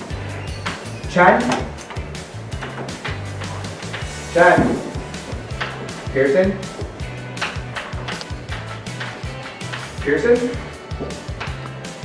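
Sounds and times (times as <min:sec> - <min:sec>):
background music with bass and beat: 0:00.0 - 0:12.0.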